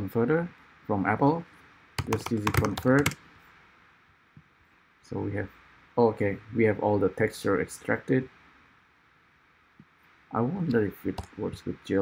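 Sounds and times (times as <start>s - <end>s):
computer keyboard click: 2.0s - 3.2s.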